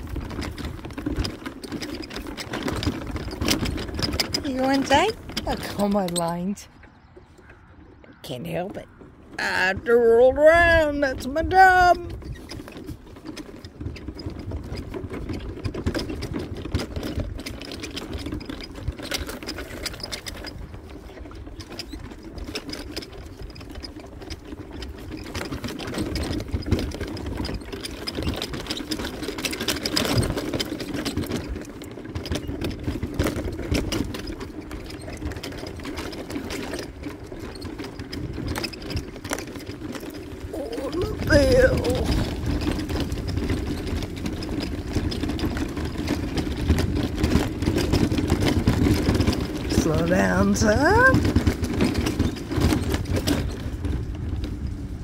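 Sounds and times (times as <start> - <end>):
clicks and rattles from scooter body: 0.0 - 55.0.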